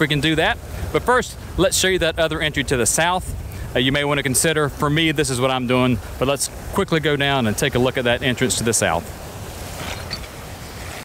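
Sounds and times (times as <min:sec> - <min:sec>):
surf washing over rocks: 0:00.0 - 0:11.0
wind on microphone: 0:00.4 - 0:05.3.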